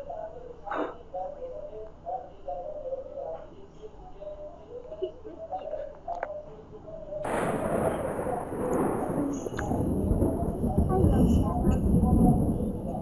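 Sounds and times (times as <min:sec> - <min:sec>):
thunder crack and rumble: 0:07.2 - 0:13.0.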